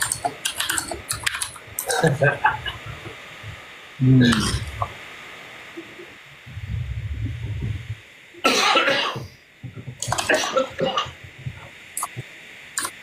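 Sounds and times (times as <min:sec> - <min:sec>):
person coughing: 0:08.4 - 0:09.3, 0:10.0 - 0:11.2.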